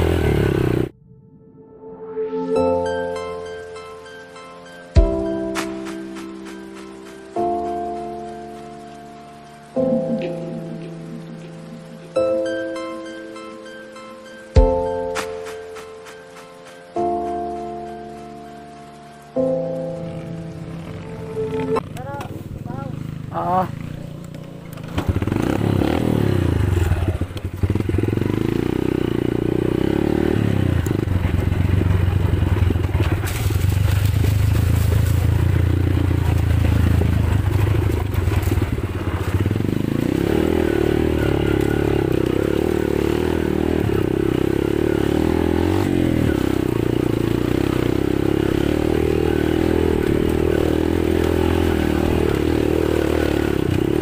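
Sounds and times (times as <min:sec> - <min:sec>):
motorcycle engine revving: 0:00.0 - 0:01.0, 0:19.4 - 0:54.0.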